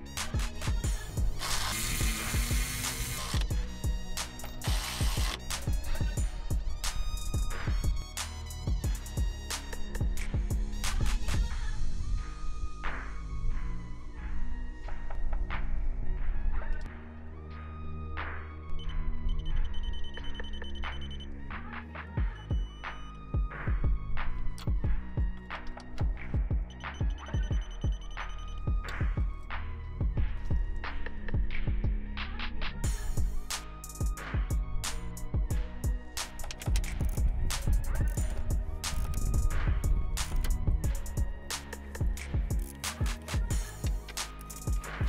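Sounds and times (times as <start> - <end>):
background music with steady beat: 0.0 - 45.0
cordless electric ratchet running: 0.9 - 3.7, 4.4 - 6.0
rapid electronic beeping: 18.9 - 21.4, 22.2 - 23.2, 26.4 - 29.4.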